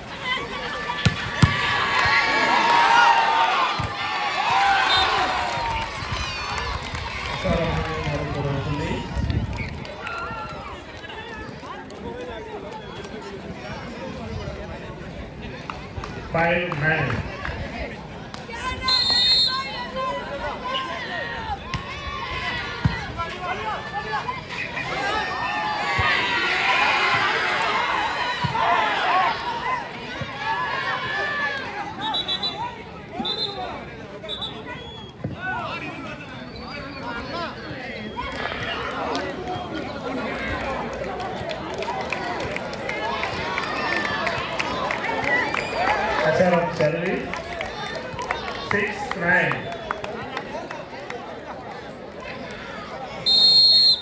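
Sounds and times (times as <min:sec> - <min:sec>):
crowd chattering and calling out: 0:00.0 - 0:54.0
referee's whistle: 0:04.7 - 0:05.3, 0:18.8 - 0:19.7, 0:32.0 - 0:35.2, 0:36.3 - 0:38.4, 0:53.2 - 0:54.0.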